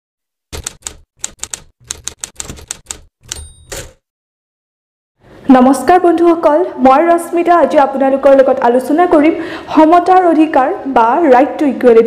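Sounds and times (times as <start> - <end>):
typewriter key clacks: 0.5 - 4.0.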